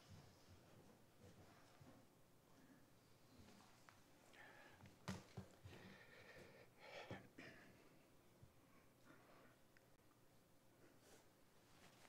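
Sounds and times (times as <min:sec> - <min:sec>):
breath close to microphone: 0:05.7 - 0:07.6.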